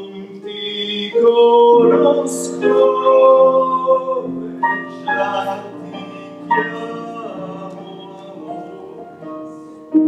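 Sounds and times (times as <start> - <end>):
man singing slowly: 0.0 - 9.6
keyboard accompaniment: 0.0 - 10.0.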